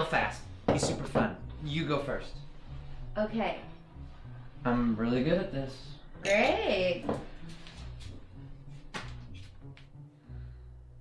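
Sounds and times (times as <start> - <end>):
low steady film score music: 0.0 - 11.0.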